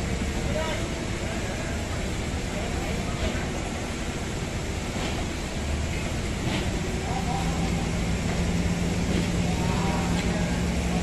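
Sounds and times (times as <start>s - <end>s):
forklift engine running: 0.0s - 11.0s.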